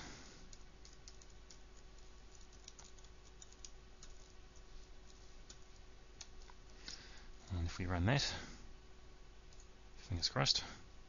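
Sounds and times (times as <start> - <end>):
faint steady hum: 0.0 - 11.0
computer keyboard typing: 0.5 - 6.6.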